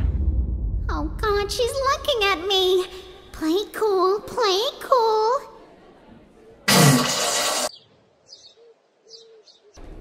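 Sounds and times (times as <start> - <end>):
loud burst of noise: 6.7 - 7.7
small birds chirping: 7.7 - 9.8.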